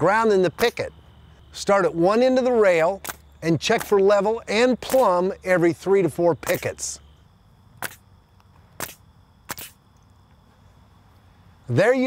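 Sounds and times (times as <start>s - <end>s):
nail gun firing: 4.8s - 5.2s, 6.4s - 6.7s.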